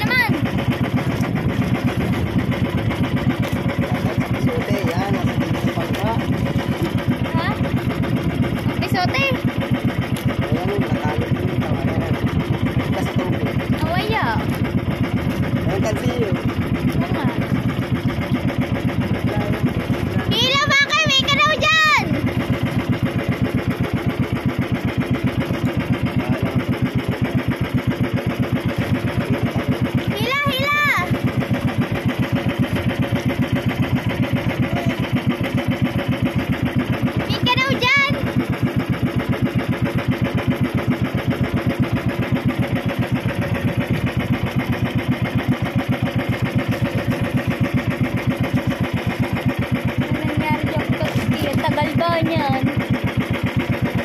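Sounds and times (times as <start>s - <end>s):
boat engine running steadily: 0.0s - 54.0s.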